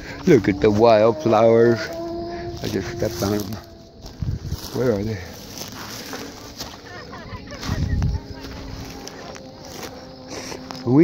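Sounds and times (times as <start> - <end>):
footsteps through dry brush: 0.0 - 11.0.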